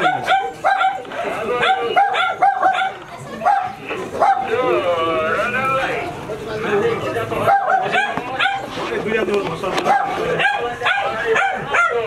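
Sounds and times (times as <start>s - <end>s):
dog barking: 0.0s - 4.6s, 7.5s - 8.7s, 9.8s - 12.0s
people talking: 0.0s - 12.0s.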